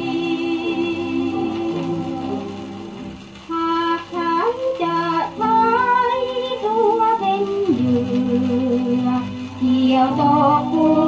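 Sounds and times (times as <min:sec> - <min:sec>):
person singing: 0:00.0 - 0:02.9, 0:03.5 - 0:11.0
instrumental accompaniment: 0:00.0 - 0:11.0.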